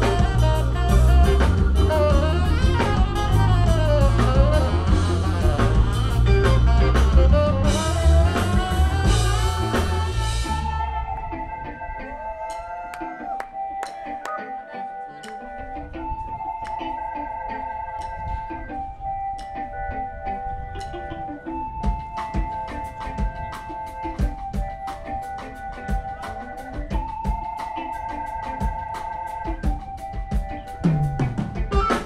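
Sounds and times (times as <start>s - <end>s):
live funk band playing: 0.0s - 32.0s.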